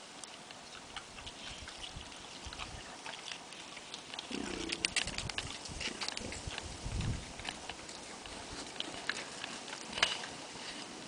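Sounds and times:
warthog grunting: 0:04.3 - 0:05.1.

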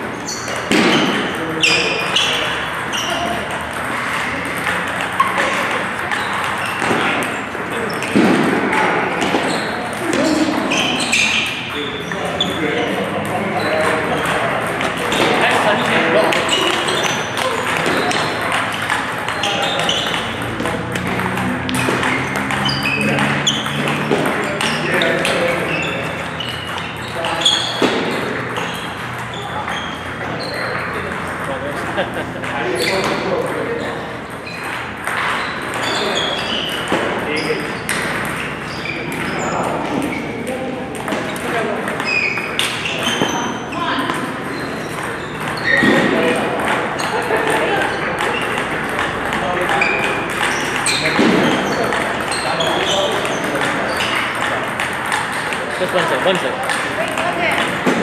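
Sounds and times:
table tennis balls clicking: 0:00.1 - 0:58.0.

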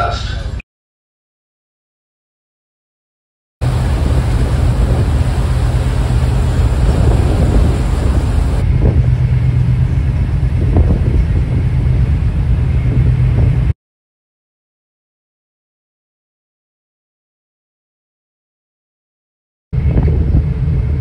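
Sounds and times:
wind rushing: 0:03.6 - 0:09.2
churned wake water: 0:03.6 - 0:13.7
ferry engine drone: 0:03.6 - 0:13.7, 0:19.8 - 0:21.0.

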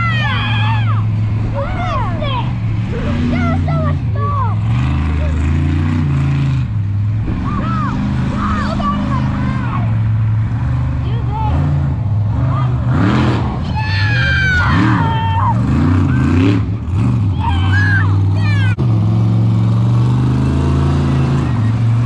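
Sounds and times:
people's voices: 0:00.0 - 0:05.8, 0:07.2 - 0:16.5, 0:17.2 - 0:18.8
monster truck engine revving: 0:00.0 - 0:22.0.

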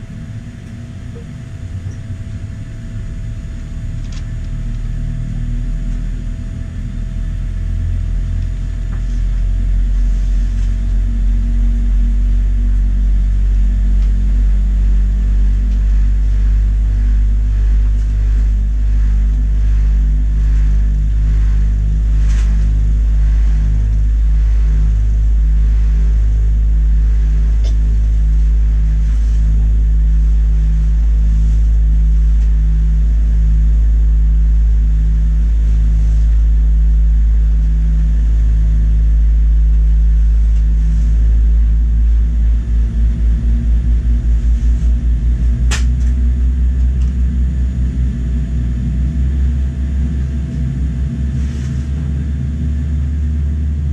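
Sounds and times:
airplane cabin engine rumble: 0:00.0 - 0:53.9.

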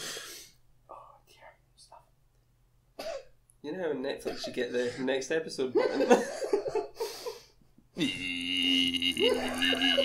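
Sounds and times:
whispering: 0:00.9 - 0:02.2.

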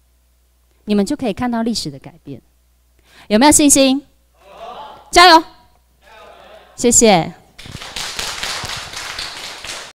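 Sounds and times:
audience applauding: 0:07.6 - 0:10.0.

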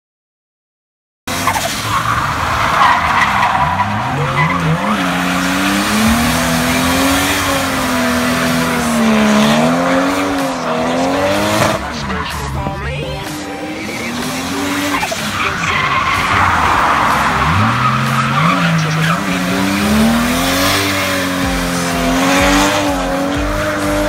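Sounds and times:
car engine revving: 0:01.3 - 0:24.0
tyres squealing: 0:01.3 - 0:24.0.

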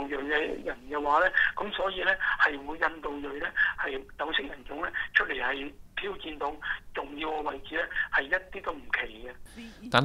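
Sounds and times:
man speaking over telephone: 0:00.0 - 0:09.4.

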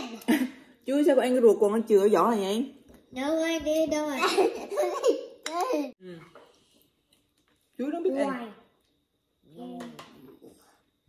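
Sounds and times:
child laughing and giggling: 0:04.1 - 0:06.0.

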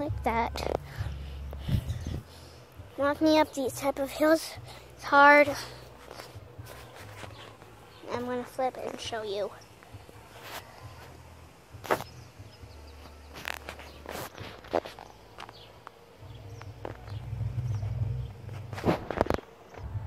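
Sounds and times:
wind rumble on microphone: 0:01.0 - 0:02.3
footsteps: 0:05.4 - 0:12.2, 0:13.0 - 0:16.0, 0:16.6 - 0:20.0.

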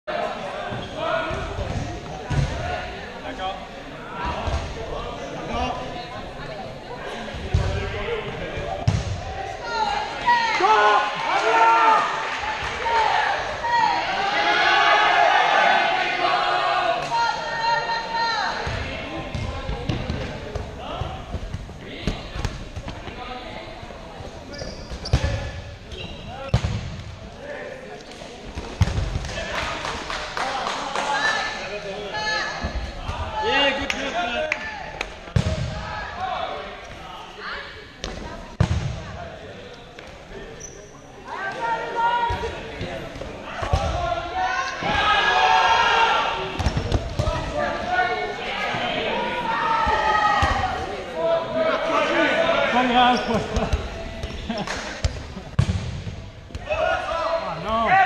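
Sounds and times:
dodgeballs thudding: 0:01.2 - 0:02.9, 0:07.3 - 0:09.3, 0:18.6 - 0:23.2, 0:26.4 - 0:27.2, 0:28.4 - 0:29.5, 0:35.3 - 0:35.9, 0:38.0 - 0:39.2, 0:42.2 - 0:44.1, 0:46.4 - 0:47.7, 0:49.8 - 0:50.8, 0:53.3 - 0:56.8
players shouting: 0:09.2 - 0:19.8, 0:41.3 - 0:53.9.

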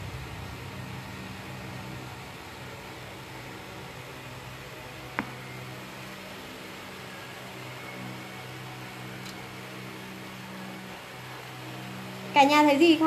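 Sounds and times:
low room hum with hiss: 0:00.0 - 0:13.0.

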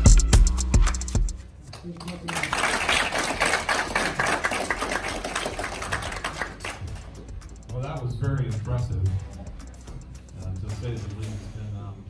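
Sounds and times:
audience applauding: 0:01.7 - 0:07.2.

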